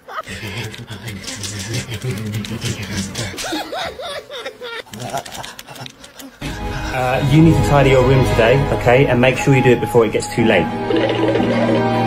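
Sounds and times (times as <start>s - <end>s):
bass-heavy music: 6.4s - 12.0s.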